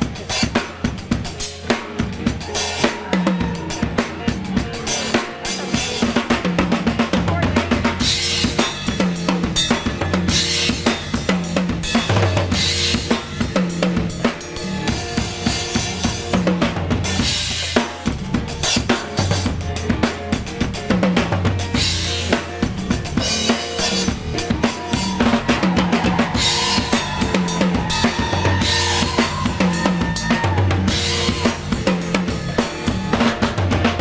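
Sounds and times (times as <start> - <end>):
drum kit playing fast groove: 0.0 - 34.0.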